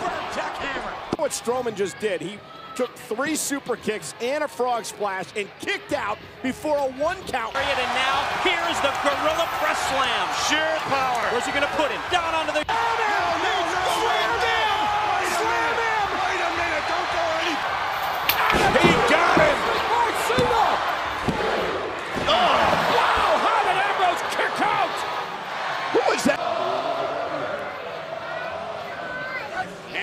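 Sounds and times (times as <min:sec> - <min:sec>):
excited voices: 0:07.5 - 0:21.0.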